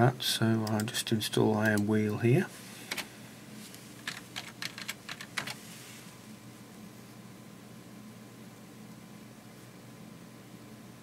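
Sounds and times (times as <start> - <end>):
low steady hum: 0.0 - 11.0
keyboard keys typed: 4.0 - 5.6.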